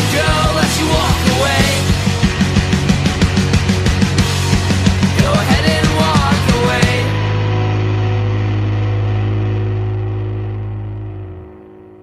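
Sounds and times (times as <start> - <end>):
band's last chord on guitars and bass: 0.0 - 12.0
drums: 0.0 - 12.0.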